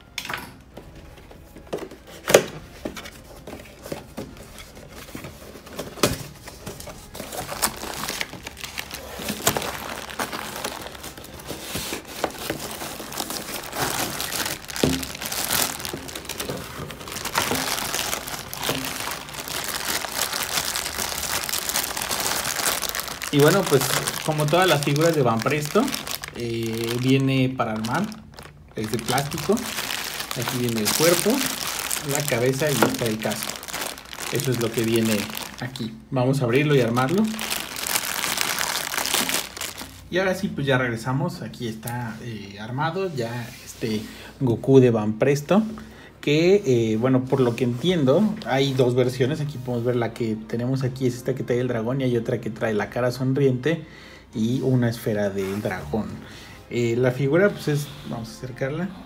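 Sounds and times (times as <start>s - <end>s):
plastic bags crinkling: 2.6s - 40.1s.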